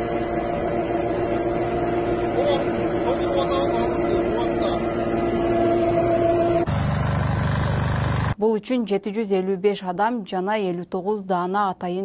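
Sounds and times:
engine humming: 0:00.0 - 0:08.4
engine pulsing: 0:00.0 - 0:08.4.

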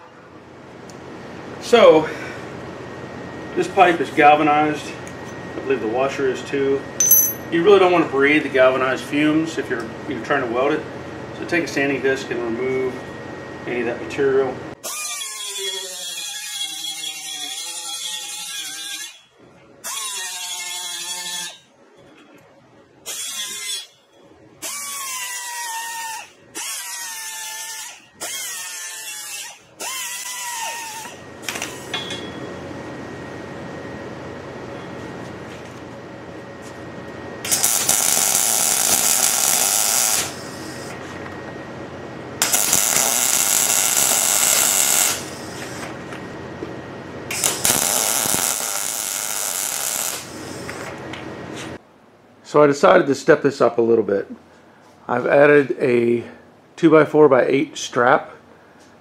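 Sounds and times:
pneumatic grinder whining: 0:14.8 - 0:21.7, 0:23.0 - 0:24.0, 0:24.6 - 0:31.9, 0:37.4 - 0:41.1, 0:42.4 - 0:46.0, 0:47.3 - 0:51.0
welding arc crackling: 0:37.4 - 0:40.9, 0:42.4 - 0:45.9, 0:47.3 - 0:51.0.

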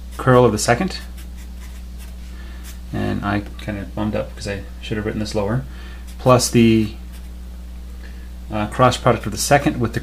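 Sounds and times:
steady low hum: 0:00.0 - 0:10.0
marker scratching on paper: 0:00.9 - 0:02.8, 0:06.1 - 0:07.4.

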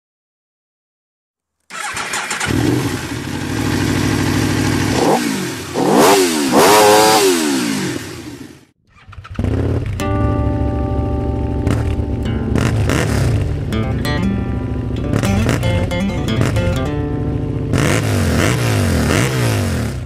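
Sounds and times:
motorcycle engine idling and revving: 0:01.7 - 0:20.0
guitar music: 0:09.9 - 0:19.2.

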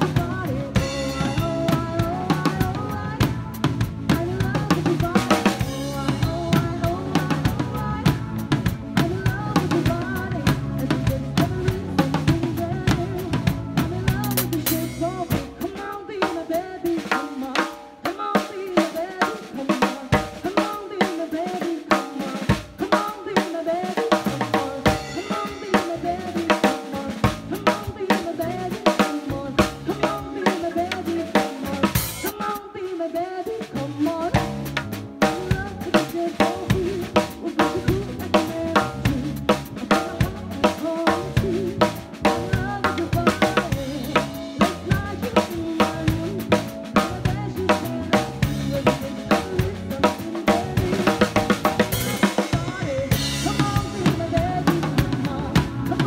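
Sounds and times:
drum kit playing a busy beat: 0:00.0 - 0:56.0
recorded pop song: 0:00.0 - 0:56.0.

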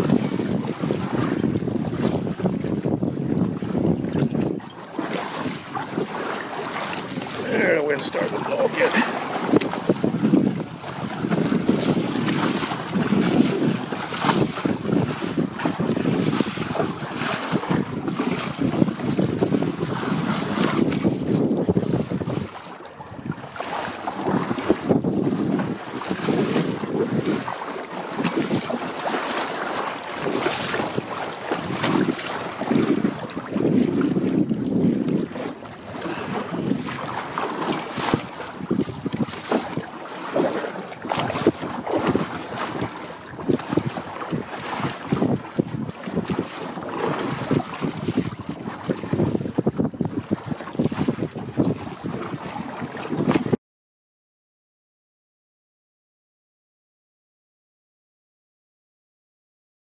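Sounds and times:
water slapping against hulls: 0:00.0 - 0:53.6
wind buffeting microphone: 0:00.0 - 0:53.6.

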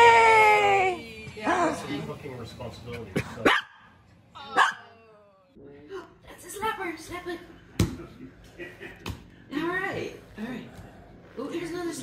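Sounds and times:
dog barking: 0:03.4 - 0:03.9.

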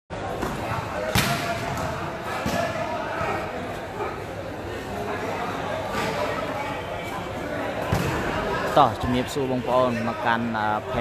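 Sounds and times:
volleyball smack: 0:00.4 - 0:02.7.

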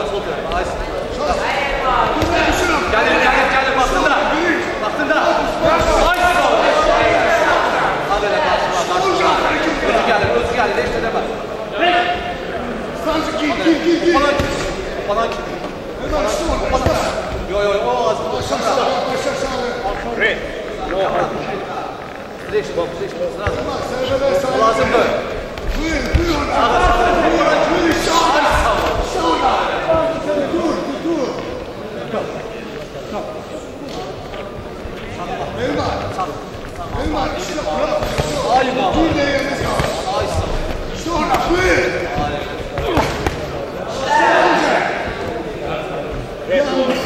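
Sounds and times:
men calling out in echoing hall: 0:00.0 - 0:47.0
men shouting: 0:43.9 - 0:45.2.

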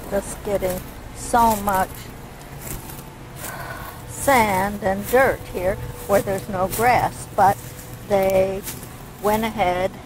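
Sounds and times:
low rumble on microphone: 0:00.0 - 0:10.0.

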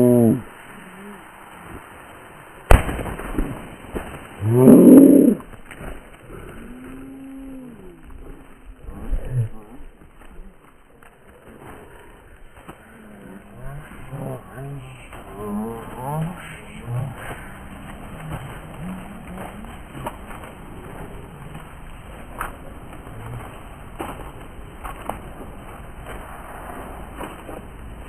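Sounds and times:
firework bang: 0:02.7 - 0:04.4
small firework pops: 0:02.7 - 0:04.4.

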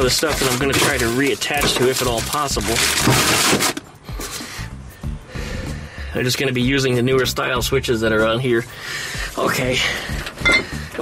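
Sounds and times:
plastic bags rustling and crinkling: 0:00.0 - 0:04.4.

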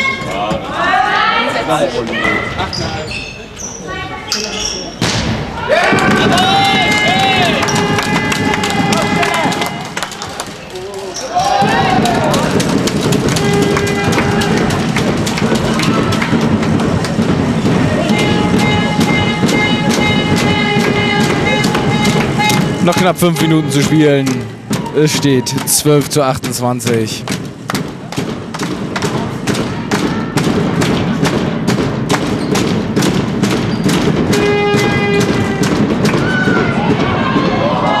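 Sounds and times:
ball bouncing on hall floor: 0:04.3 - 0:09.8, 0:11.4 - 0:38.0
voices: 0:17.8 - 0:27.3.

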